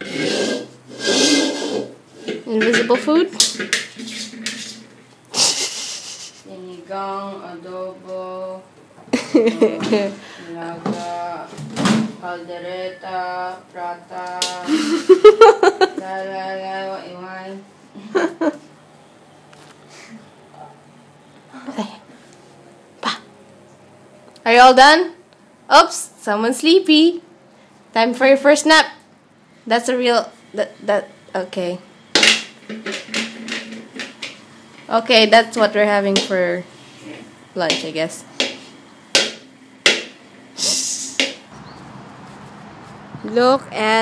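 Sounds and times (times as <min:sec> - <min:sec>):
metal wok scraping on tile floor: 0:00.0 - 0:06.4, 0:32.5 - 0:34.8.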